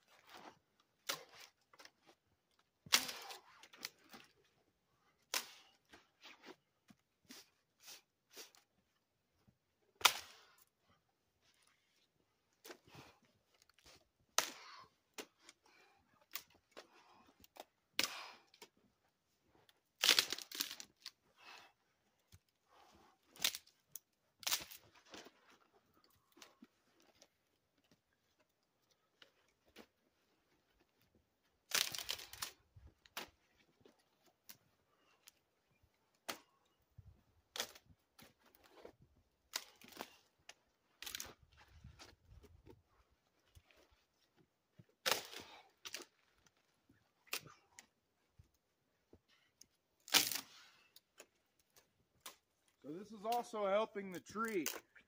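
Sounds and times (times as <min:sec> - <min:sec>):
dry branches snapping: 0:02.8 - 0:03.9, 0:20.0 - 0:21.1, 0:23.4 - 0:24.8, 0:31.7 - 0:33.3, 0:39.5 - 0:40.2, 0:41.0 - 0:41.4, 0:45.0 - 0:46.1, 0:50.0 - 0:50.5.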